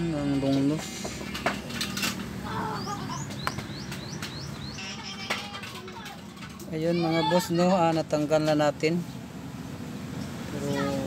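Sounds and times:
bird chirping: 2.5 - 5.3.

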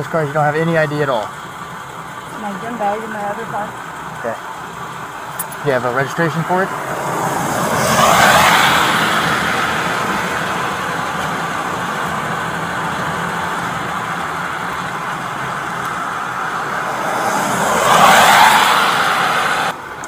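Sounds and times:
car passing on wet pavement: 0.0 - 20.0
low engine hum: 0.0 - 20.0
traffic hiss: 0.0 - 20.0.

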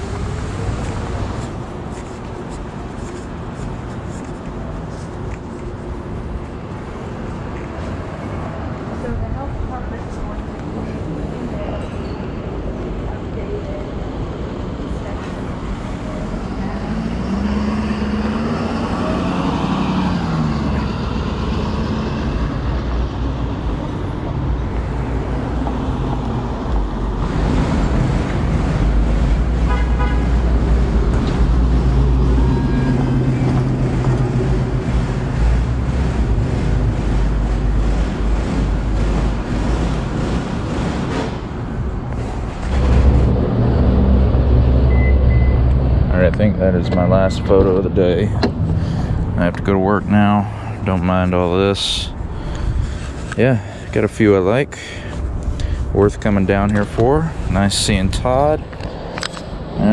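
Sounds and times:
low engine rumble: 0.0 - 59.9
street noise: 0.0 - 59.9
vehicle driving past: 15.6 - 51.0.

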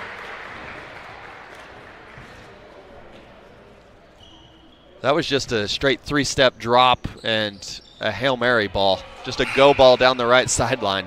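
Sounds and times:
crowd voices: 8.1 - 11.0.

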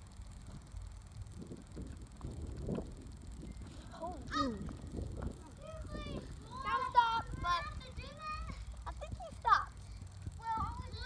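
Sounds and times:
wind rumbling on microphone: 0.0 - 11.0
child shouting: 4.1 - 4.7, 5.6 - 9.7.

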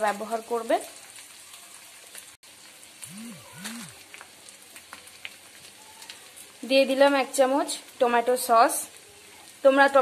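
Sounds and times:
spice paste sizzling in oil: 0.0 - 10.0
short low tones: 3.1 - 4.0.

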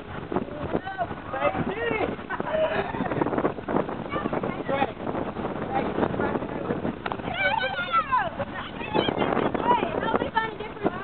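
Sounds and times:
chatter: 0.6 - 11.0.

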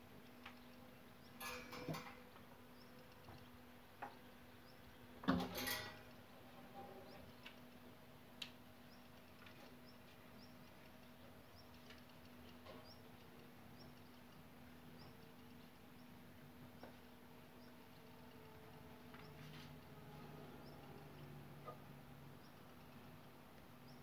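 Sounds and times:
small clicks: 7.3 - 16.2, 22.4 - 24.0.

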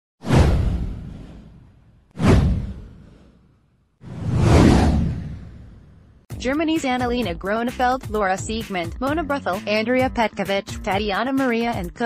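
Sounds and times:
deep whoosh: 0.2 - 3.4, 4.0 - 6.2.

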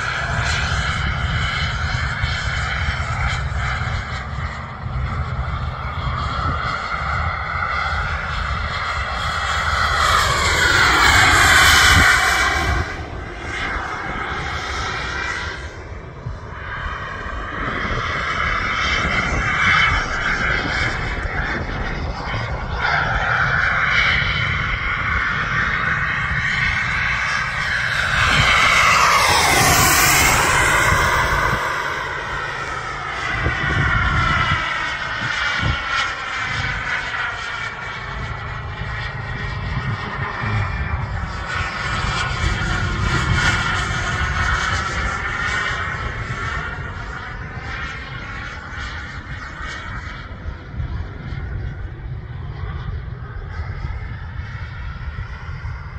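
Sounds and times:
model jet engine whining: 0.0 - 55.9.

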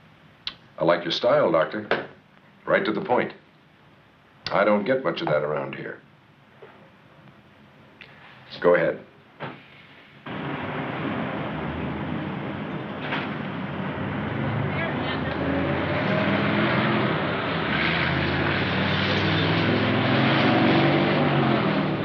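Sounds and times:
road noise: 10.2 - 22.0.

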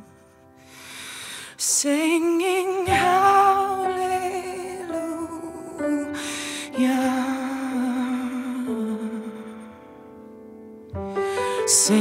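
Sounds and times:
woman singing with vibrato: 1.6 - 9.4, 11.5 - 12.0.

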